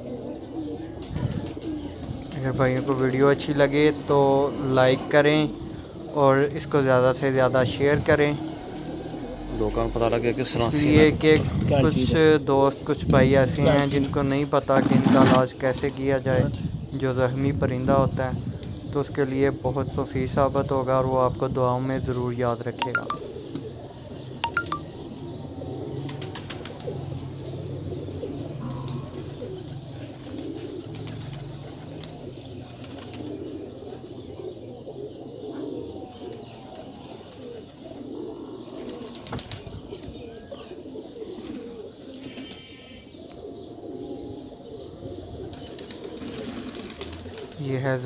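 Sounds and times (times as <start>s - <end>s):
pigeons cooing: 0.0s - 48.0s.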